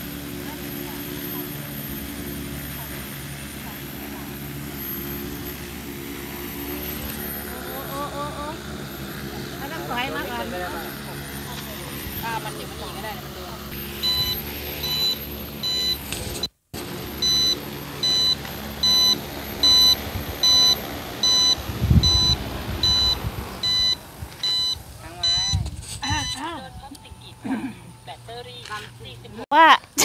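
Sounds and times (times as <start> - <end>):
drone rotors humming: 0.0 - 29.4
high electronic warning beeps: 13.8 - 16.5, 17.2 - 27.2.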